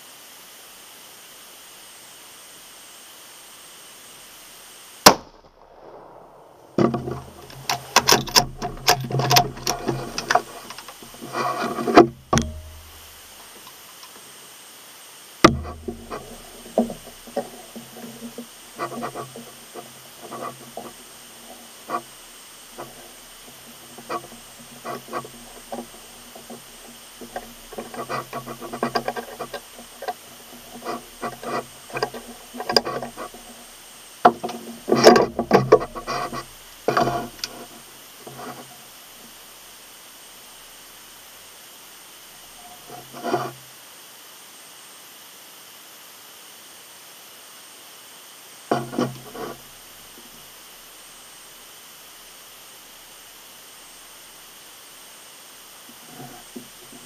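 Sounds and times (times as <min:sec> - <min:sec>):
sharp knocks: 0:11.9 - 0:12.9, 0:15.5 - 0:19.4.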